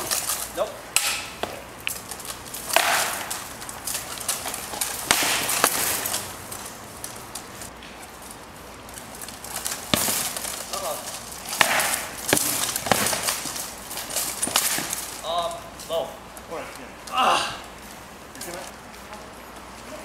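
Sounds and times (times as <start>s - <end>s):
rattan weapons striking shield: 5.0s - 6.1s, 11.6s - 13.3s.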